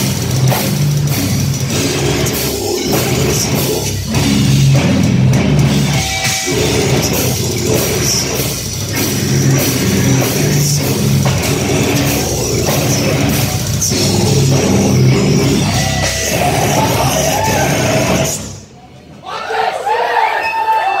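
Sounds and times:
heavy metal band playing: 0:00.0 - 0:18.8
crowd cheering and yelling: 0:01.7 - 0:21.0.

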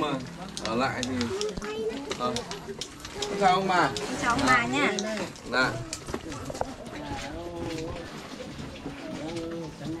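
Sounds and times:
people talking at a distance: 0:00.0 - 0:10.0.

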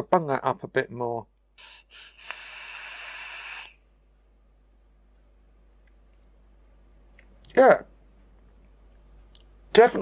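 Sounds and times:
vape hissing draw: 0:01.6 - 0:03.8.

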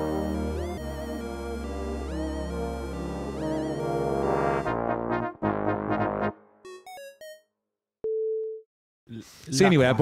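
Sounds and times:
electronic jingle notes: 0:00.0 - 0:04.6.

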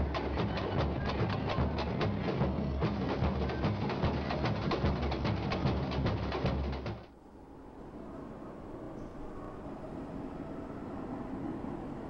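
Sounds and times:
samba percussion band playing: 0:00.0 - 0:07.0.

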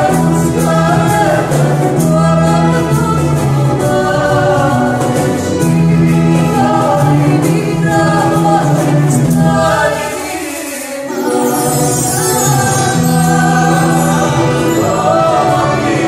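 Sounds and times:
voices singing in harmony: 0:00.0 - 0:16.0.

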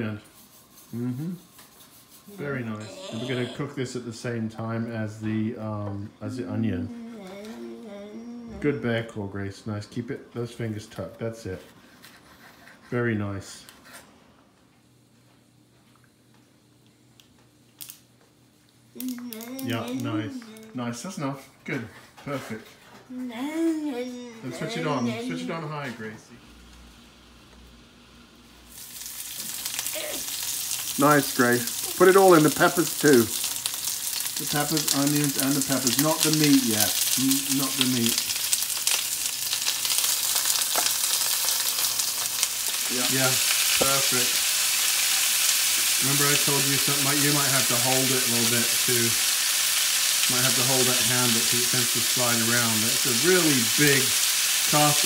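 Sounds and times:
vegetables sizzling in hot oil: 0:26.8 - 0:55.0.

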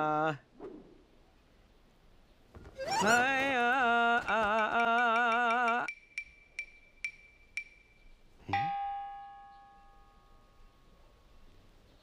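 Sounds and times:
man singing: 0:02.8 - 0:05.9
light ringing ticks: 0:04.7 - 0:10.6.

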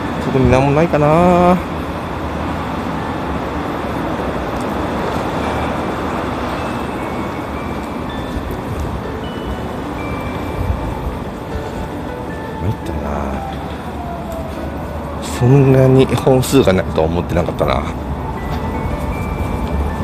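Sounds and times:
passing cars hissing: 0:00.0 - 0:20.0.

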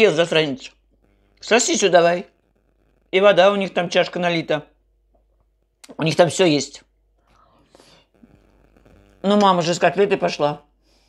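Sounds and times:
breathing: 0:07.2 - 0:08.2, 0:10.8 - 0:11.0.

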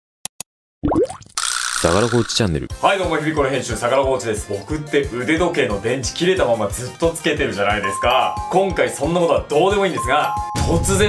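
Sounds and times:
man speaking: 0:01.8 - 0:03.5, 0:06.7 - 0:11.0.

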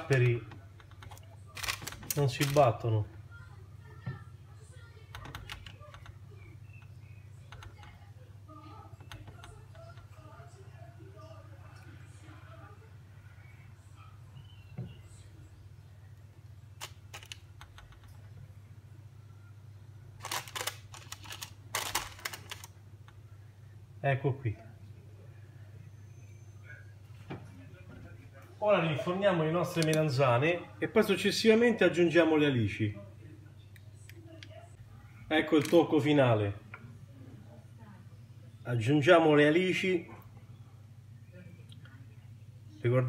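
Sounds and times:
kitchen appliance hum: 0:00.0 - 0:37.4.

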